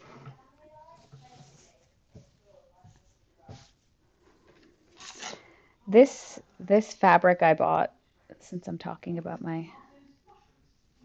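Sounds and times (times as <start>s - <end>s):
ruler scraping on fabric: 5.0s - 5.4s
woman speaking: 5.9s - 7.9s, 8.5s - 9.8s.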